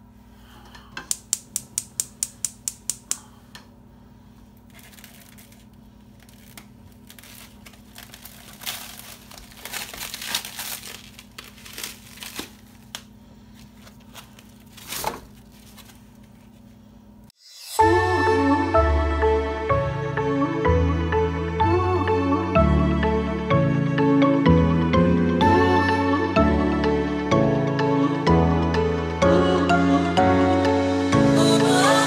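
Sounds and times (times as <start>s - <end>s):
gas stove igniter clicking: 1.0s - 3.3s
plastic wrap crinkling and tearing: 4.6s - 16.6s.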